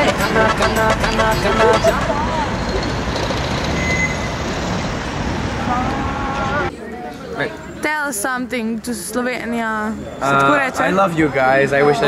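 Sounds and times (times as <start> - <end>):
vehicles passing on road: 0.0 - 7.9.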